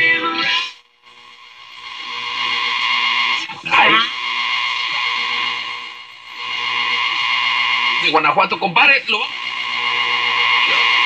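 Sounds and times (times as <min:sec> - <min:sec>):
shortwave radio hiss and whistling: 0:00.0 - 0:11.0.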